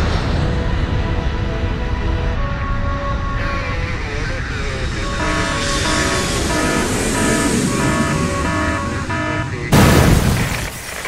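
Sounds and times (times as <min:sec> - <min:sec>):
jet airplane flying over: 0:00.0 - 0:11.0.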